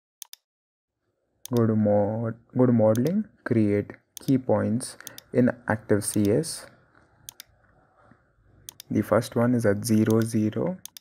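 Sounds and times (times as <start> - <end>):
computer mouse clicking: 0.2 - 0.4, 2.9 - 3.2, 5.0 - 5.3, 6.1 - 7.8, 8.6 - 11.0.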